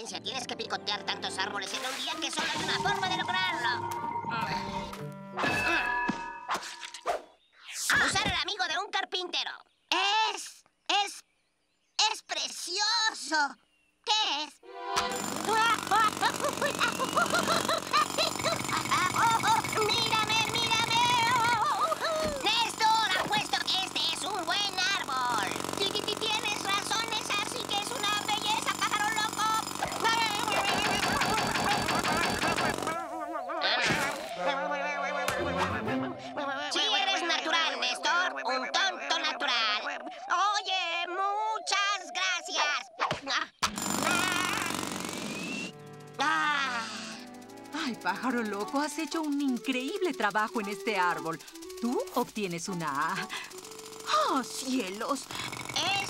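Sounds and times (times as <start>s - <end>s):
cartoon music: 0.0s - 6.5s, 14.6s - 22.6s, 29.9s - 37.3s, 45.7s - 55.2s
warbling trilling laugh: 2.4s - 3.5s, 15.5s - 20.0s, 21.2s - 22.5s, 29.8s - 40.2s
jackhammer rattle: 15.0s - 33.0s, 43.6s - 56.0s.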